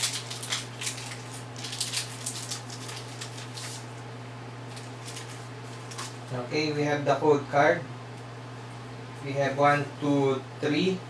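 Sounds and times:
foil wrapper crinkling and tearing: 0.0 - 4.0, 4.7 - 6.3.

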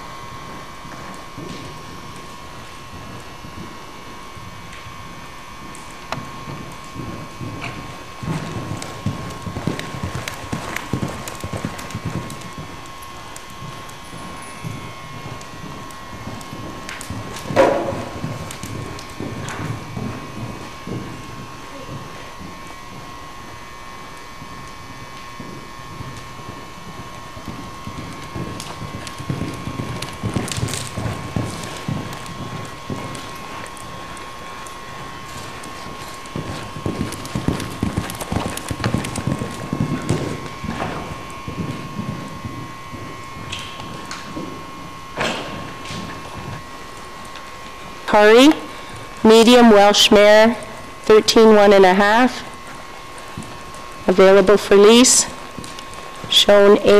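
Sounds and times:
hoofbeats on sand: 0.4 - 48.0, 52.4 - 54.1.

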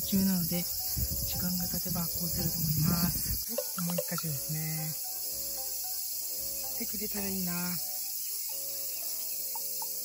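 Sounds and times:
insect chorus: 0.0 - 10.0
soft background music: 0.0 - 10.0.

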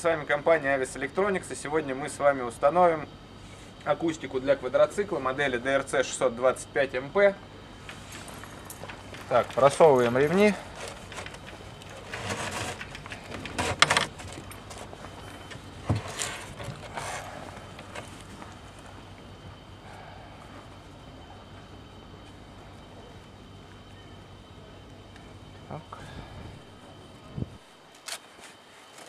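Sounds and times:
straps rustling and scraping: 7.8 - 18.9.

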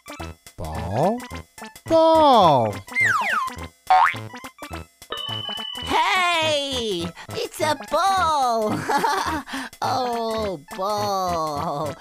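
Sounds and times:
children's music with steady beat: 0.0 - 12.0
cartoon whistle-like glides: 2.9 - 3.6.

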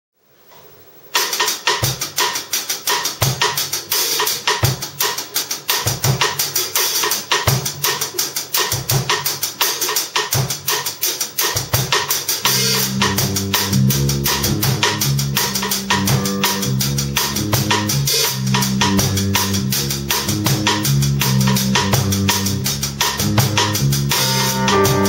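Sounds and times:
drum kit playing jazz: 1.1 - 25.0.

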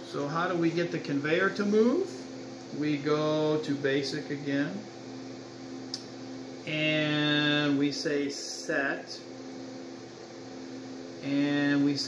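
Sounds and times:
low mechanical hum with fan hiss: 0.0 - 12.0.

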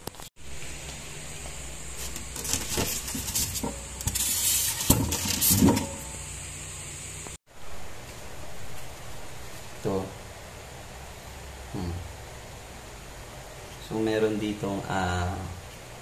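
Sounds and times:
incubator hum: 0.4 - 13.6
scraping and knocking handling: 2.0 - 6.0.

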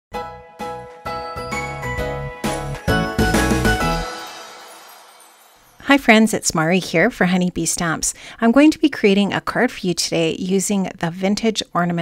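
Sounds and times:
bell-like music jingle: 0.2 - 6.9
bass line: 1.1 - 4.1.

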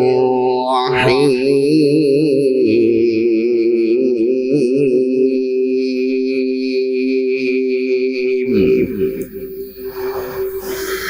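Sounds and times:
man reciting melodically: 0.0 - 11.0.

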